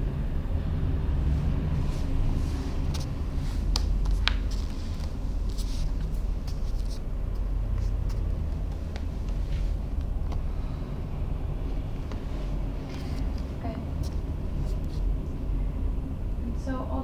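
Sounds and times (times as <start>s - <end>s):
low background rumble: 0.0s - 17.0s.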